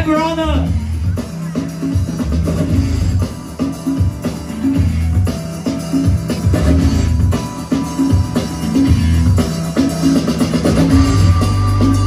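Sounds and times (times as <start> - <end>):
dance music with drum beat and bass: 0.0 - 12.0.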